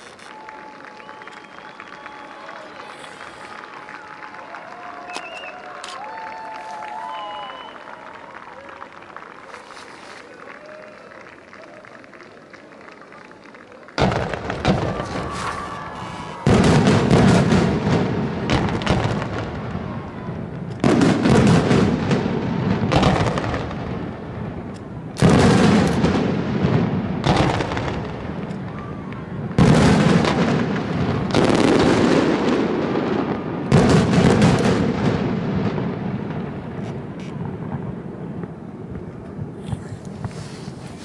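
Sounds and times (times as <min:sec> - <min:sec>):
firework shells bursting: 0:20.5 - 0:28.7.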